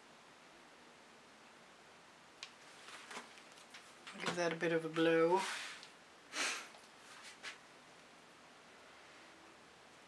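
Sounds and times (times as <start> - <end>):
faint short hisses: 5.4 - 7.6.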